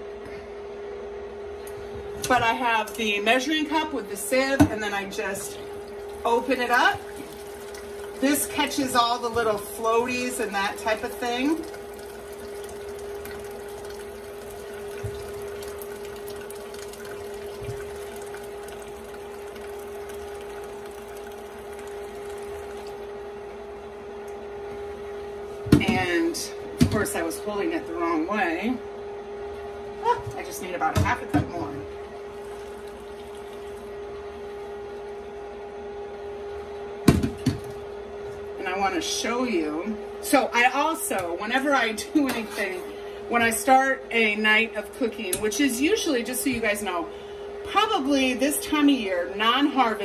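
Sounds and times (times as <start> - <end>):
steady hum: 0.0 - 50.0
liquid pouring in thin stream: 6.9 - 8.6, 11.6 - 23.1, 32.3 - 33.9.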